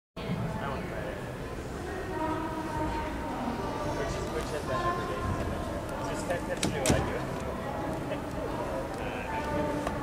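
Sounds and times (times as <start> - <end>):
hall crowd noise: 0.2 - 10.0.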